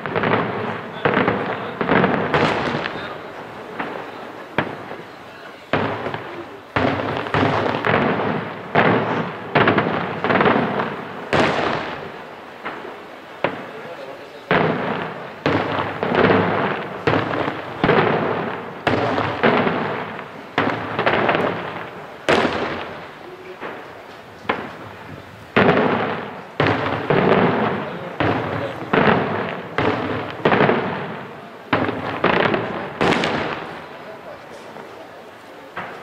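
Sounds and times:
crackling rumble echoing: 0:00.0 - 0:36.0
firework shells bursting: 0:00.0 - 0:36.0.

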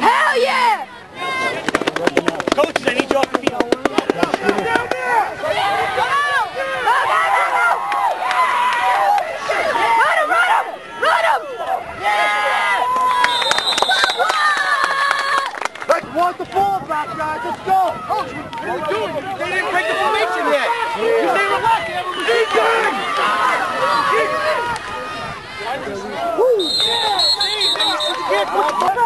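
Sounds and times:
crowd shouting and cheering: 0:00.0 - 0:29.0
fast sharp clicks: 0:01.6 - 0:05.0.

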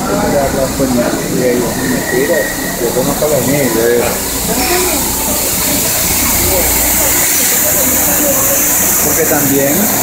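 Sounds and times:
faint voices: 0:00.0 - 0:10.0
low train hum: 0:00.0 - 0:10.0
train hiss: 0:00.0 - 0:10.0.

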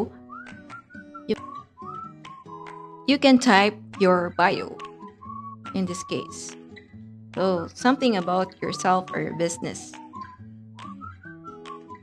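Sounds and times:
whistled melody: 0:00.0 - 0:12.0.

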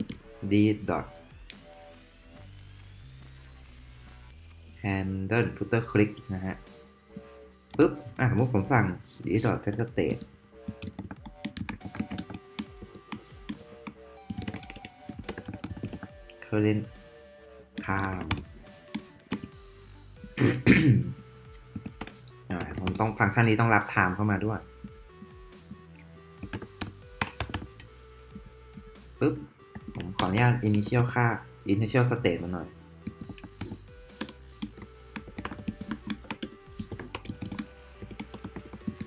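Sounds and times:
faint background music: 0:00.0 - 0:39.0
man clearing his throat: 0:20.4 - 0:21.2.

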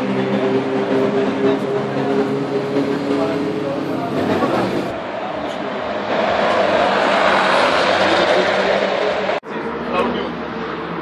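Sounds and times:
car engine: 0:00.0 - 0:11.0
road noise: 0:00.0 - 0:11.0.

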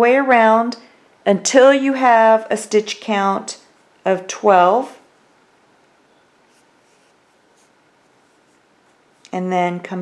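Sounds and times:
yarn rustling on crochet hook: 0:03.2 - 0:09.5.

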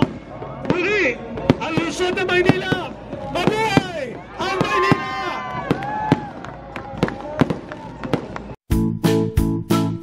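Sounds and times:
fireworks bangs: 0:00.0 - 0:08.6.

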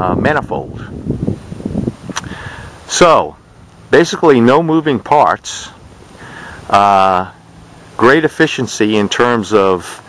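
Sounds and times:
wind rumbling on microphone: 0:00.0 - 0:06.9
short hiss: 0:02.0 - 0:02.9
sharp click: 0:02.1 - 0:02.3.

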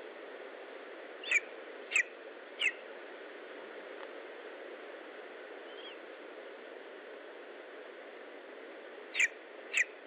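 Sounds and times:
steady hiss: 0:00.0 - 0:10.0
eagle chick high calls: 0:01.2 - 0:02.8, 0:05.6 - 0:06.0, 0:09.1 - 0:10.0.

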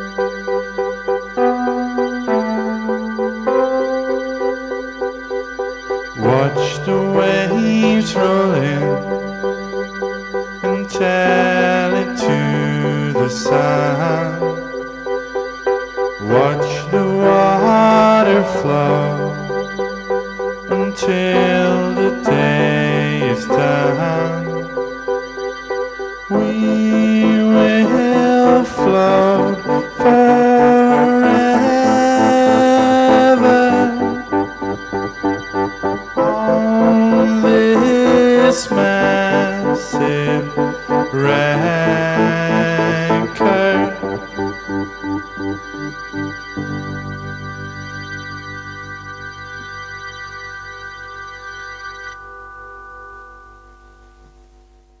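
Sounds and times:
lo-fi pop music: 0:00.0 - 0:50.0
electric piano chords: 0:00.0 - 0:54.4.

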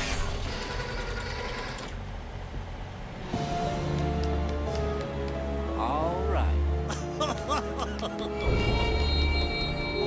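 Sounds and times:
small motor clicking rapidly: 0:00.3 - 0:02.0.

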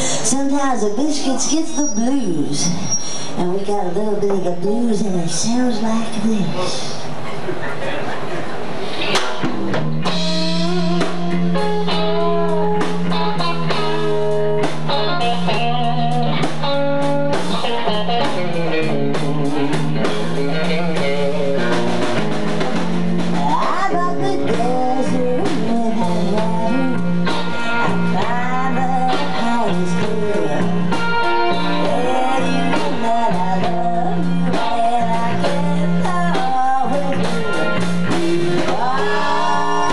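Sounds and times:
bass guitar: 0:00.0 - 0:39.9
electric guitar lines: 0:00.0 - 0:39.9
drum kit: 0:06.2 - 0:39.9.

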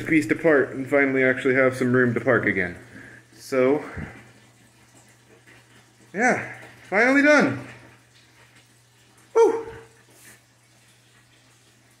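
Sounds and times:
faint water trickling: 0:00.0 - 0:12.0.

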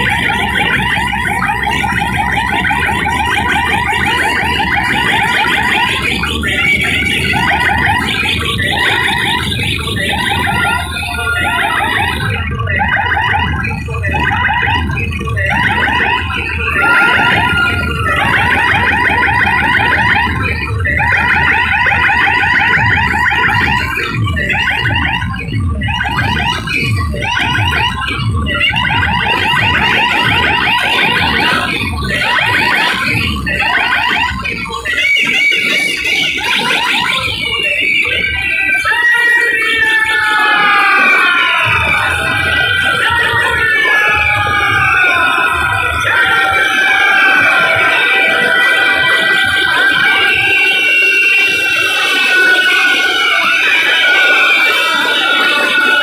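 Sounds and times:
loud dj music: 0:00.0 - 0:56.0
pulsing synth siren: 0:00.0 - 0:56.0.

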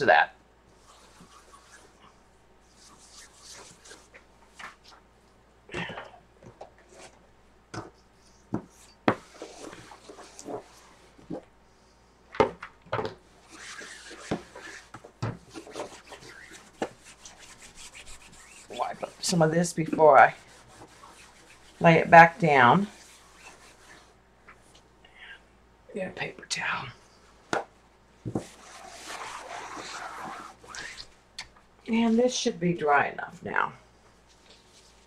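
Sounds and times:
paper rubbing and rustling: 0:00.8 - 0:05.0, 0:08.2 - 0:11.4, 0:13.4 - 0:21.8, 0:22.8 - 0:24.1, 0:28.4 - 0:31.1, 0:34.3 - 0:35.0.

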